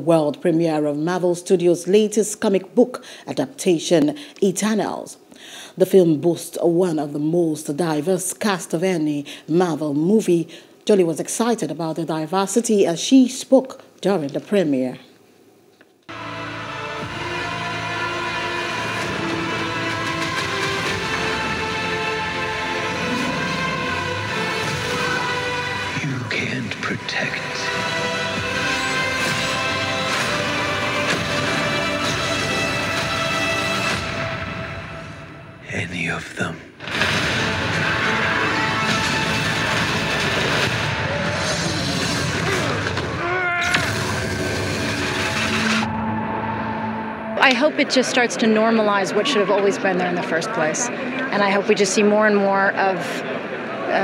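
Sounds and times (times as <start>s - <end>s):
cinematic trailer music: 16.1s - 35.9s, 36.8s - 49.0s.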